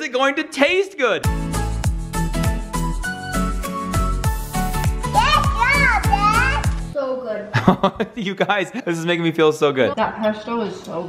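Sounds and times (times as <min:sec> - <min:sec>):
background music with kick drum: 0:01.2 - 0:07.0
child making sing-song sounds: 0:05.1 - 0:07.5.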